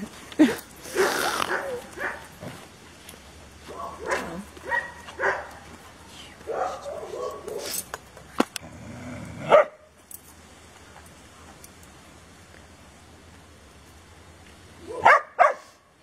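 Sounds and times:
dog barking: 0.9s - 2.3s, 3.7s - 5.7s, 6.5s - 7.8s, 9.5s - 9.8s, 14.9s - 15.8s.

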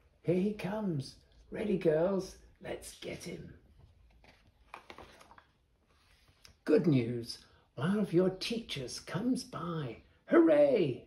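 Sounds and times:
paper page being turned: 3.8s - 6.5s.

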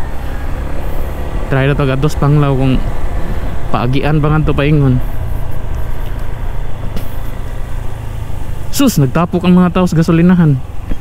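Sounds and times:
scooter engine and road noise: 0.0s - 11.0s.

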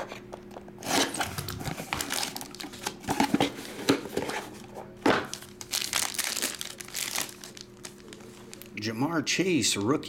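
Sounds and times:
cardboard and plastic crinkling: 1.2s - 8.8s.

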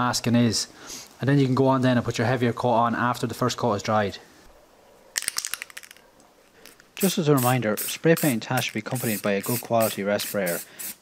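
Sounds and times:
spray can ball rattling: 5.2s - 6.0s, 6.6s - 11.0s.

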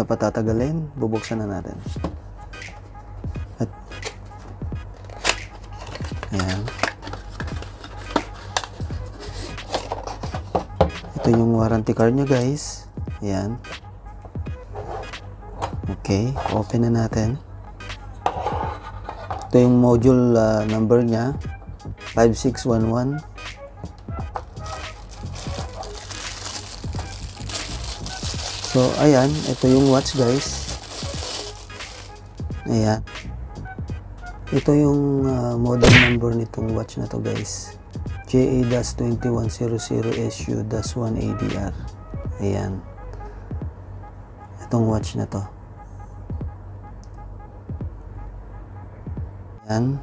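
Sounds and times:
plastic wrapping crinkling: 24.3s - 32.4s.

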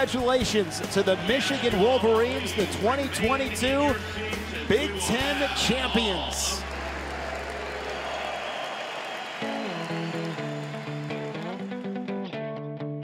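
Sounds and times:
crowd cheering and applause: 0.0s - 3.3s, 4.4s - 12.2s
held guitar chords: 9.4s - 13.0s.

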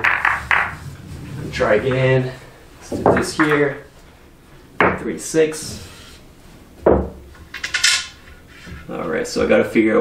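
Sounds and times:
cue striking ball knock: 0.0s - 1.0s
pool balls clattering against cues: 0.0s - 2.2s, 2.8s - 3.9s, 6.8s - 9.0s.

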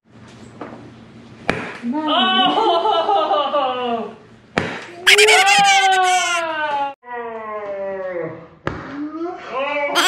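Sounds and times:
person crying out: 5.1s - 6.6s.

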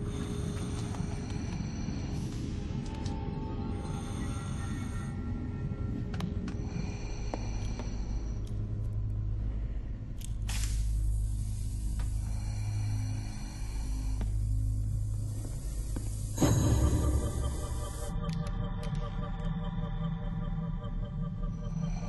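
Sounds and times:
low suspenseful drone: 0.0s - 22.0s.

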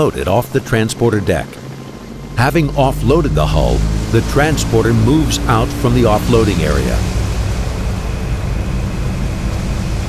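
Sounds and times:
boat engine rumble: 0.0s - 10.0s
sea water wash: 0.0s - 10.0s.

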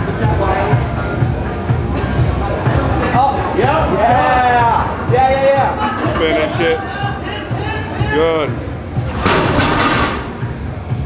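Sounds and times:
weight plates clanging and rattling: 9.1s - 10.6s
barbell crashing on rubber floor: 9.2s - 10.5s.

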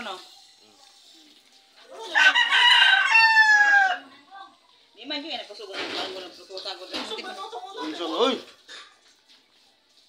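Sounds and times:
rooster crowing: 2.0s - 4.2s.

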